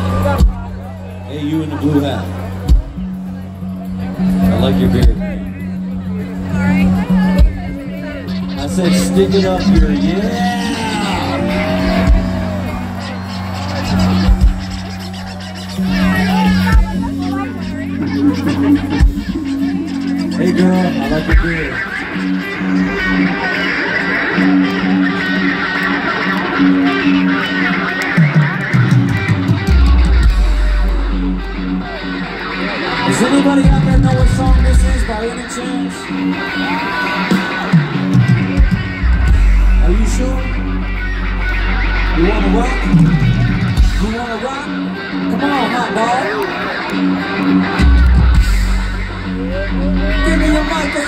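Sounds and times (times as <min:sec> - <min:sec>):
heavy bass: 0:00.0 - 0:23.4, 0:28.6 - 0:36.5, 0:37.2 - 0:45.3, 0:46.9 - 0:51.0
electric guitar riff: 0:00.0 - 0:51.0
live metal band playing: 0:00.0 - 0:51.0
voices: 0:00.0 - 0:51.0.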